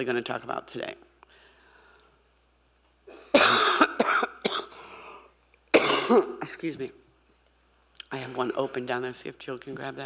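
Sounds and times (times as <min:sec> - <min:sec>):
woman coughing into microphone: 0:03.1 - 0:04.8, 0:05.7 - 0:06.6.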